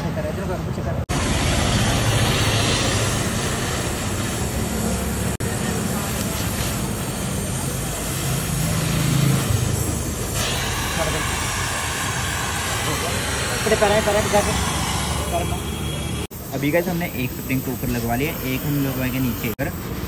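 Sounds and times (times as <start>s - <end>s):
gas welding torch hissing roar: 1.1s - 20.0s.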